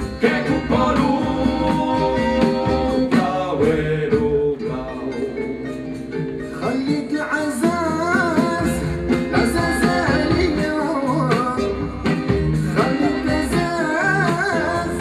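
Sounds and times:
man singing: 0:00.0 - 0:05.8, 0:06.4 - 0:15.0
live band playing: 0:00.0 - 0:15.0.

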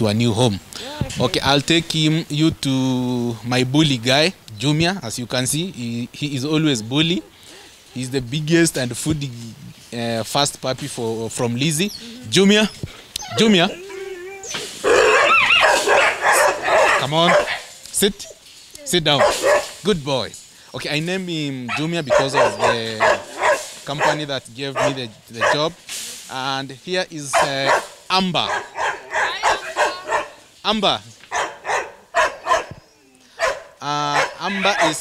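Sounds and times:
dog yelping cry: 0:13.2 - 0:18.4, 0:19.2 - 0:19.7, 0:21.7 - 0:25.6, 0:27.4 - 0:30.5, 0:31.3 - 0:35.0
young dogs barking: 0:13.2 - 0:18.4, 0:19.1 - 0:19.8, 0:21.7 - 0:25.8, 0:27.3 - 0:30.5, 0:31.3 - 0:35.0.

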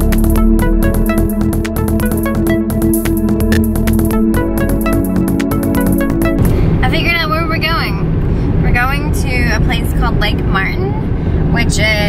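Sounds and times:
woman talking: 0:06.8 - 0:11.0, 0:11.6 - 0:12.0.

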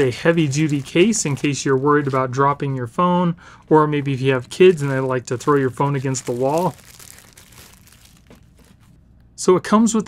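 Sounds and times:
plastic bag crinkling: 0:00.0 - 0:03.0, 0:03.6 - 0:09.0.

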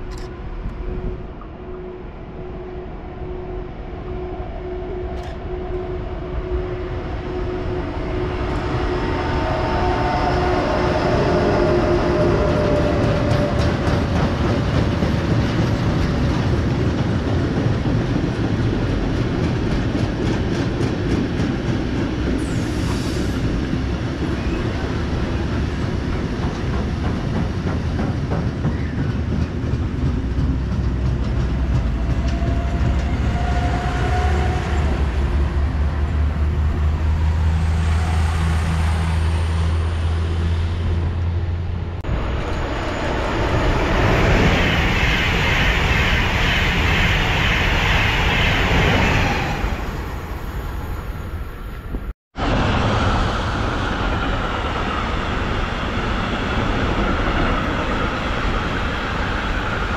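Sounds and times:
electric train hum: 0:00.0 - 0:59.9
high-speed train rushing past: 0:00.0 - 0:59.9.

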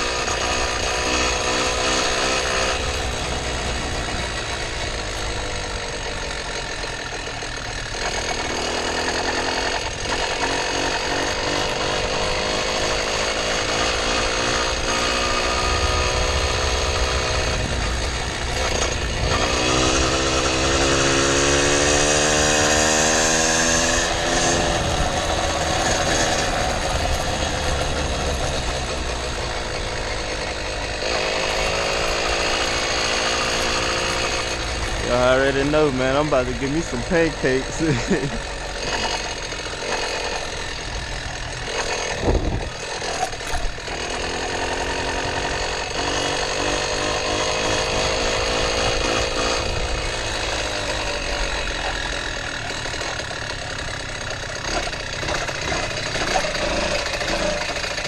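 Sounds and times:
two-stroke engine revving: 0:00.0 - 0:58.0.

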